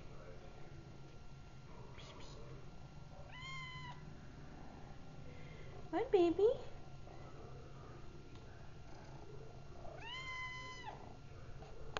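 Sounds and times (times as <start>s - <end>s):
kitten meowing: 3.3s - 4.0s, 10.0s - 11.0s.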